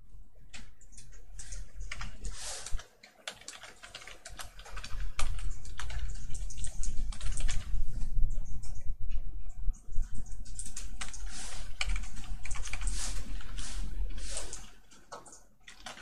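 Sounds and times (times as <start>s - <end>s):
computer keyboard typing: 0.4s - 8.8s, 10.0s - 16.0s.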